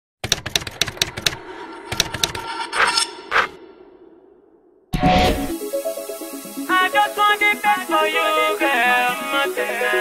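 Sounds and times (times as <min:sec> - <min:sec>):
typewriter key clacks: 0:00.2 - 0:01.4.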